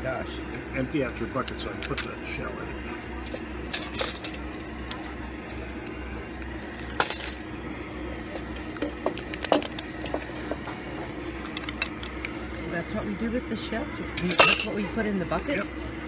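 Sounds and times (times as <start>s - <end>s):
lobster shell cracking: 1.4s - 2.1s, 8.7s - 10.1s.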